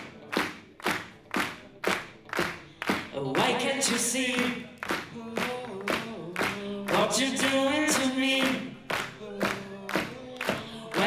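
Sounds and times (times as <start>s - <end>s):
hand claps in a hall: 0.0s - 11.0s
person singing: 3.1s - 11.0s.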